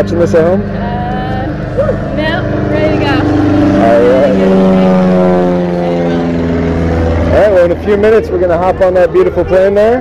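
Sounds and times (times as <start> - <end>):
propeller aircraft engine drone: 0.0 - 10.0.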